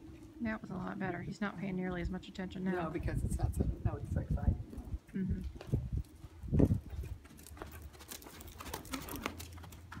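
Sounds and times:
horse hoofbeats on soft dirt: 0:00.0 - 0:10.0.

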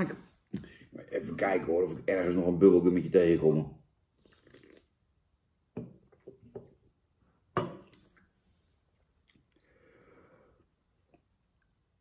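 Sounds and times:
man gulping and swallowing: 0:04.2 - 0:05.0, 0:09.1 - 0:09.8, 0:10.9 - 0:11.7
faint breath out: 0:09.6 - 0:10.7.

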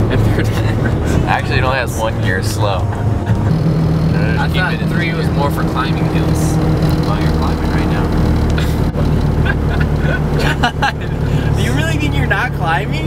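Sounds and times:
people talking: 0:00.0 - 0:08.8, 0:09.5 - 0:13.0
diesel engine under load: 0:00.0 - 0:13.0
road noise: 0:00.0 - 0:13.0.

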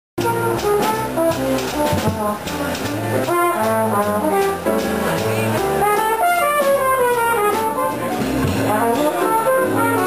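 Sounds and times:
bass line: 0:00.2 - 0:10.0
flugelhorn jazz solo: 0:00.2 - 0:10.0.

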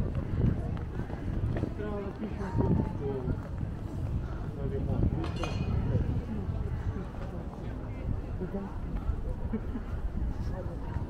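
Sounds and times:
footsteps on stone paving: 0:00.0 - 0:04.4
passers-by talking: 0:00.0 - 0:11.0.

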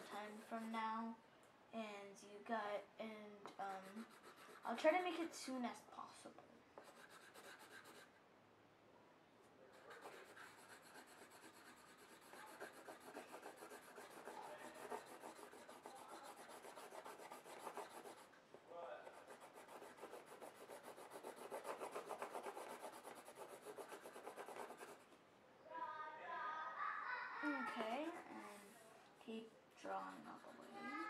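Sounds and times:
colored pencil shading on paper: 0:00.0 - 0:00.9, 0:03.6 - 0:05.3, 0:06.8 - 0:08.1, 0:09.7 - 0:18.3, 0:19.0 - 0:25.0, 0:27.7 - 0:28.8, 0:29.8 - 0:31.0.

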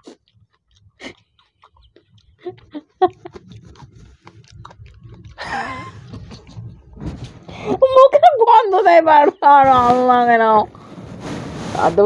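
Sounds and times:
low hum: 0:02.2 - 0:12.0
person's voice: 0:07.7 - 0:10.7, 0:11.7 - 0:12.0.

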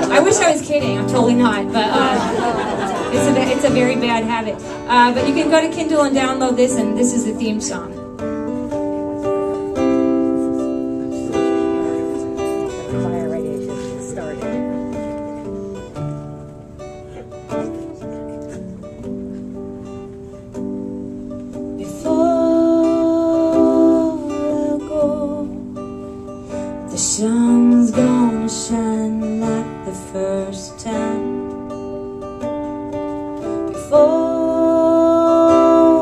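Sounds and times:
acoustic guitar chords: 0:00.0 - 0:36.0.

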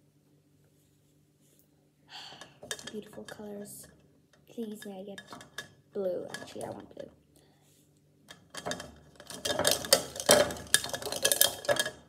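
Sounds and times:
markers rattling in a cup: 0:08.5 - 0:12.0.

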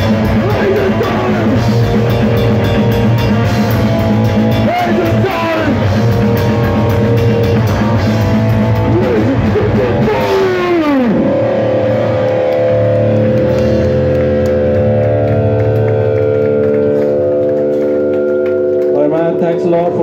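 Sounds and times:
electric guitars ringing chord: 0:00.0 - 0:20.0.

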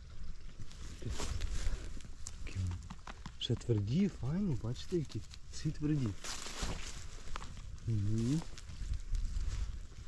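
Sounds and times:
rustling of undergrowth: 0:00.0 - 0:10.0.

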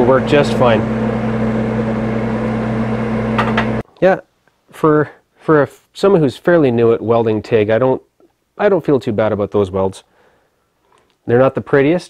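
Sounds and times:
welding machine electrical hum: 0:00.0 - 0:03.8.

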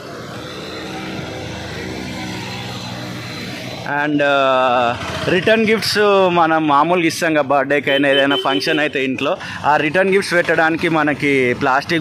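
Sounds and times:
small vehicle engine running: 0:00.0 - 0:03.9, 0:04.5 - 0:05.6
street traffic noise: 0:00.0 - 0:12.0.

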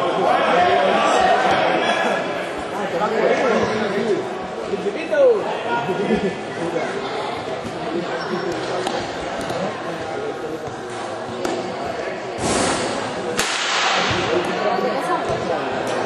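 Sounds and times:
spectators chattering: 0:00.0 - 0:16.0
loud rushing noises: 0:12.4 - 0:14.4.

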